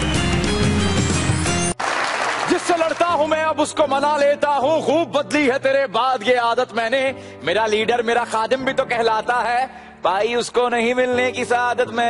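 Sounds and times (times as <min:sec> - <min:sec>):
show theme music: 0:00.0 - 0:05.4
audience applause: 0:01.8 - 0:03.2
man talking: 0:02.4 - 0:04.9.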